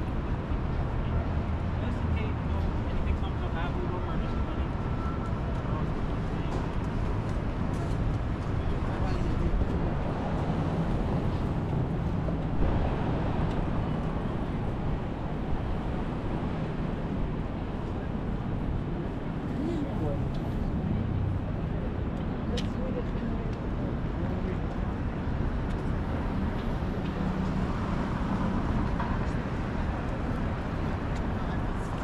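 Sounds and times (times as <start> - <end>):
low traffic rumble: 0.0 - 32.0
pedestrian voices: 0.0 - 32.0.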